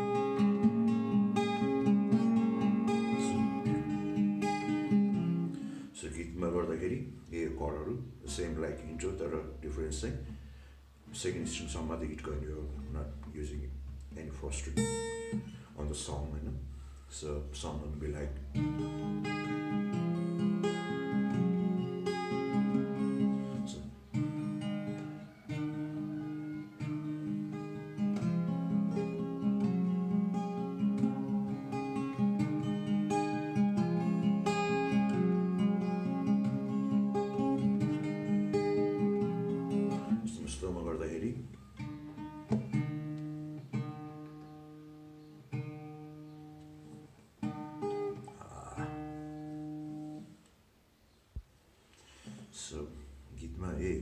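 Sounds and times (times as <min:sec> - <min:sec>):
acoustic guitar picking: 0:00.0 - 0:16.9, 0:17.6 - 0:50.4.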